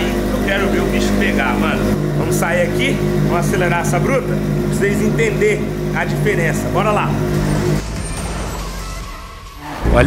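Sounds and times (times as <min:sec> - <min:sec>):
motorcycle engine: 0:00.0 - 0:10.0.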